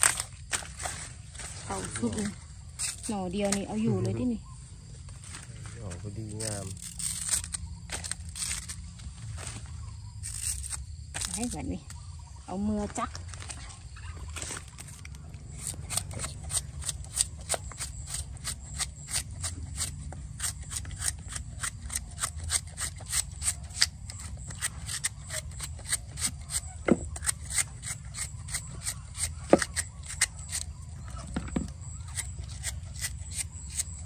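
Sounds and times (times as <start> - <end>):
knife slicing bamboo shoot: 14.8 - 30.8.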